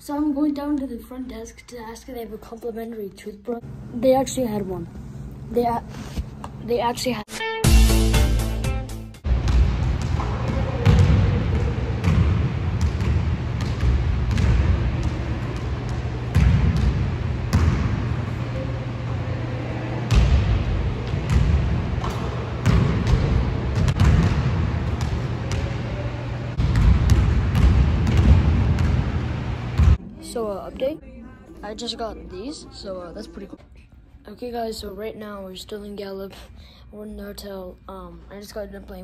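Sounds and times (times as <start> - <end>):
steady low hum: 2.1 - 7.3, 9.2 - 39.0
basketball bouncing on wooden floor: 9.3 - 18.0, 20.1 - 25.8, 26.6 - 29.2.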